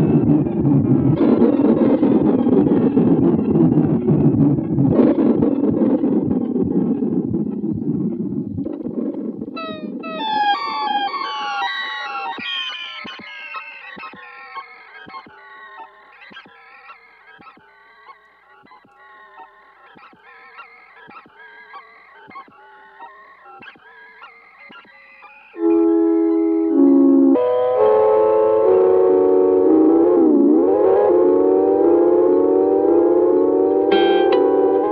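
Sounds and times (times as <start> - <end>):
electric guitar chord with delay: 31.6 - 34.9.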